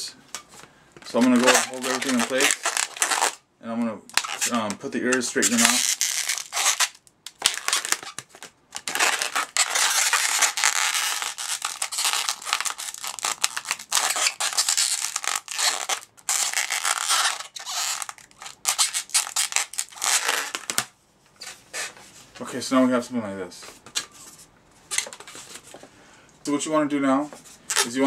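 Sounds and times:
balloon rubbing and squeaking: 1.1 - 3.4, 4.1 - 20.8, 21.4 - 22.0, 27.7 - 28.0.

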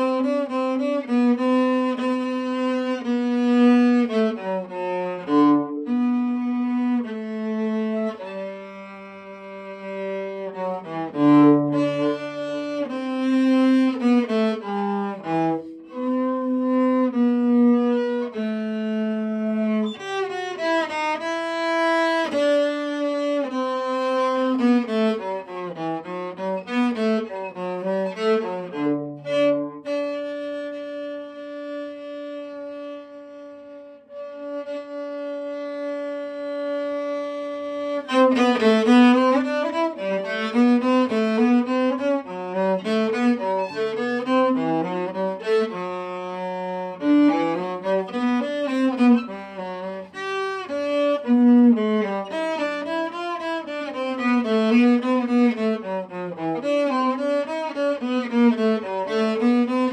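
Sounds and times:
bowed cello: 0.0 - 59.9.

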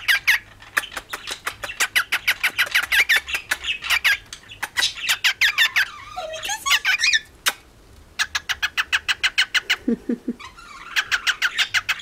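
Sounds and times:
cockatiel chirping: 0.0 - 7.3, 8.2 - 9.8, 10.4 - 12.0.

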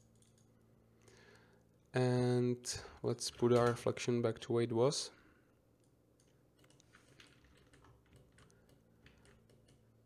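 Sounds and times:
computer keyboard clicks: 0.1 - 0.5, 5.8 - 9.8.

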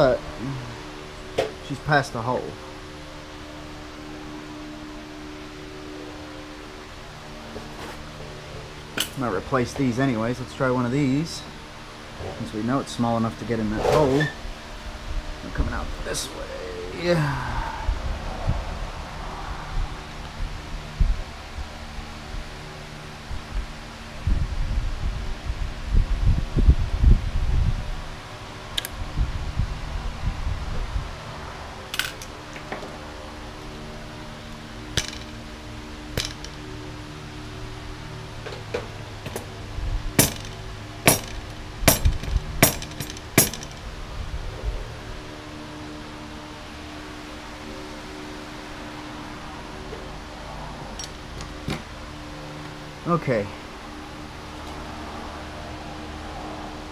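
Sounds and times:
tools handling knocks: 35.0 - 35.4, 36.2 - 36.6, 38.4 - 39.5, 40.2 - 43.8
sharp metallic clinks: 40.2 - 43.9.

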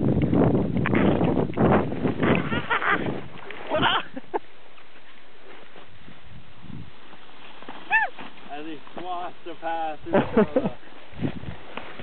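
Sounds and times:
steady rustling hiss: 1.8 - 12.0
woman yelping: 7.9 - 8.2.

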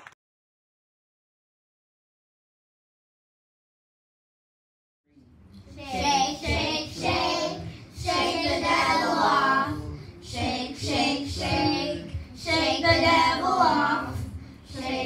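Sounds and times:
girls choir singing: 5.8 - 15.0.

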